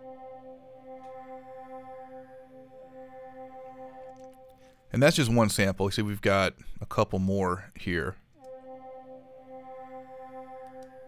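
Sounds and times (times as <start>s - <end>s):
sustained synth pad tone: 0.0s - 4.9s, 8.4s - 11.0s.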